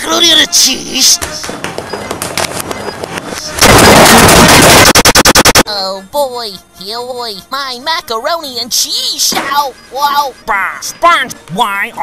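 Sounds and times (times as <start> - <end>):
sudden very loud noise: 3.6 - 5.6.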